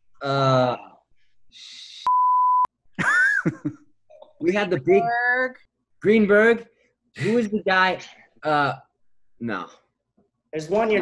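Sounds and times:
censor bleep: 2.1s - 2.7s.

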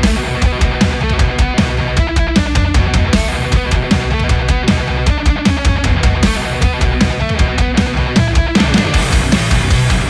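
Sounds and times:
drums in fast steady beat: 0.0s - 10.0s
electric guitar riff: 0.0s - 10.0s.

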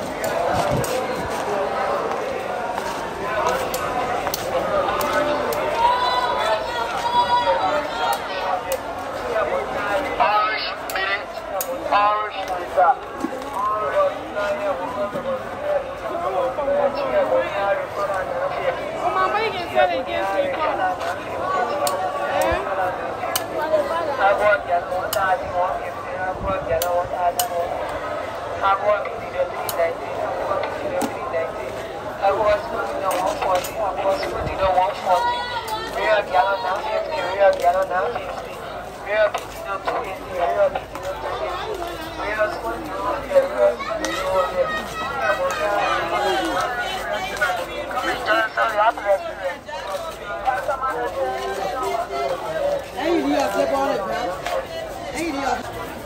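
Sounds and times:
busy street market noise: 0.0s - 56.0s
people talking and calling out: 0.0s - 56.0s.

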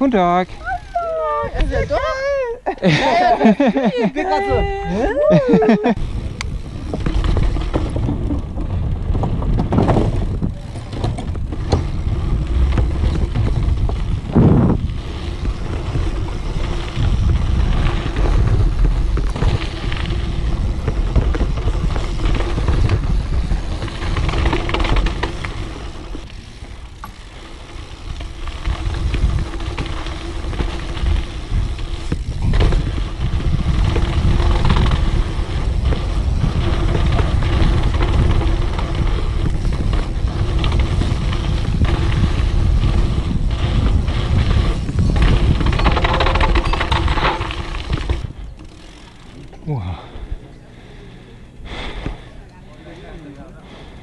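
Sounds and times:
wind buffeting microphone: 3.4s - 52.4s
bike rattling and knocking: 3.4s - 54.0s
tyres rolling over dirt: 5.2s - 54.0s.

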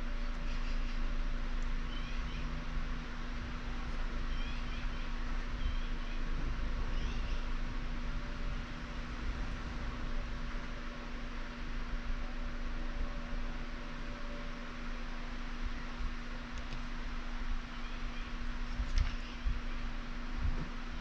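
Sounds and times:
constant low hum: 0.0s - 21.0s.

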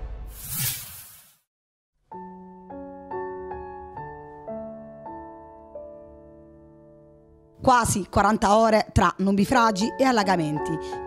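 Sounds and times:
whoosh sound effect: 0.2s - 1.5s.

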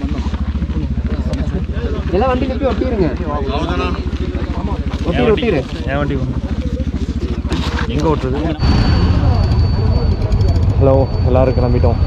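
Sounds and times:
motorcycle engine idling: 0.0s - 12.0s
voices talking: 0.0s - 12.0s.

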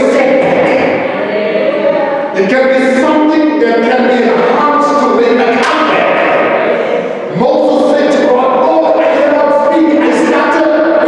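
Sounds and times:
man preaching in chant-like voice: 2.3s - 6.5s, 7.2s - 11.0s.

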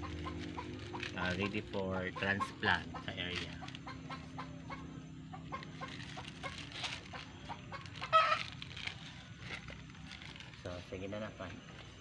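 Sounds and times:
chickens clucking: 0.0s - 8.6s.

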